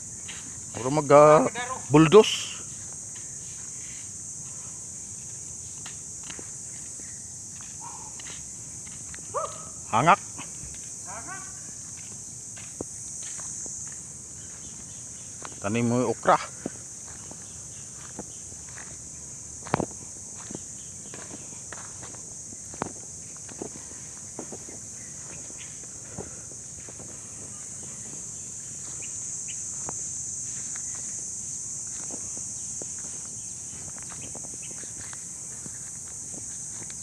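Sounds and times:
faint footsteps on grass: 0.0s - 37.0s
insect chorus: 0.0s - 37.0s
steady high hiss: 0.0s - 37.0s.

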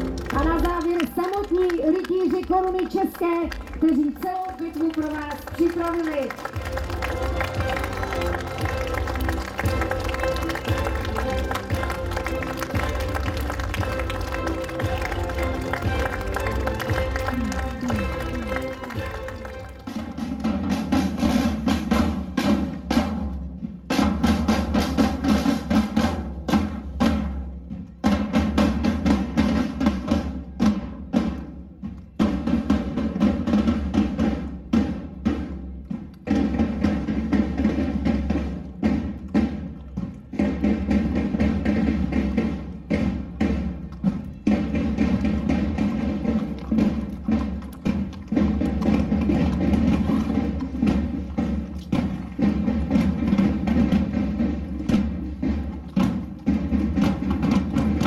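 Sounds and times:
side drums beating marching rhythm: 0.0s - 58.0s.

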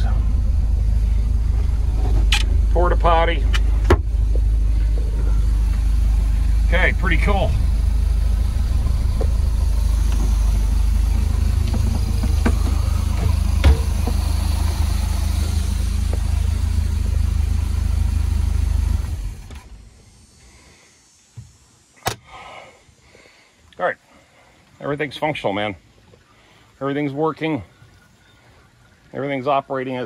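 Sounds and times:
boat engine running: 0.0s - 20.3s.

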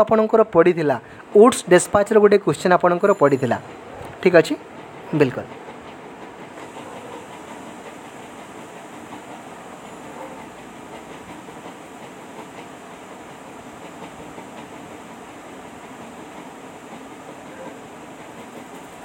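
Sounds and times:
steady background noise: 0.0s - 19.0s.

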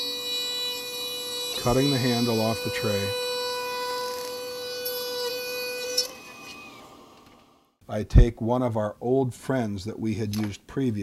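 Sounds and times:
rotary handpiece whining: 0.0s - 7.6s.

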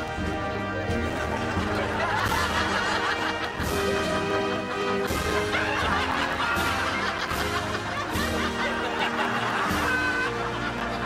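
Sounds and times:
light comedy music: 0.0s - 11.0s
people laughing: 0.4s - 11.0s.

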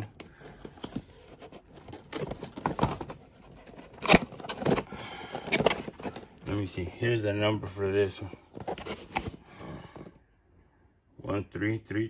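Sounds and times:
cardboard box scraping and rustling: 0.5s - 6.5s.

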